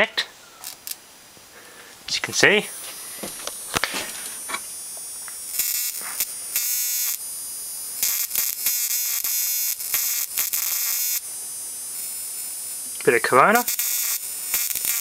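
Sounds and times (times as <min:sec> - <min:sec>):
steady high-pitched whine: 0:00.0 - 0:15.0
high-voltage sparks buzzing: 0:00.6 - 0:15.0.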